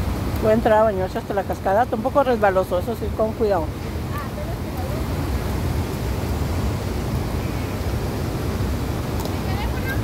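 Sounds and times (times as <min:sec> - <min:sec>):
river water rushing over weir: 0:00.0 - 0:10.0.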